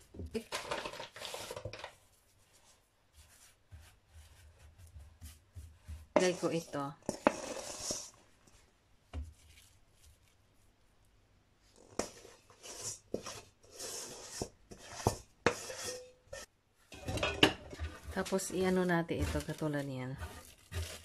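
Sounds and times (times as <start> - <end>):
metal bowl scrapes and clinks: 6.2 - 8.2, 11.8 - 21.0.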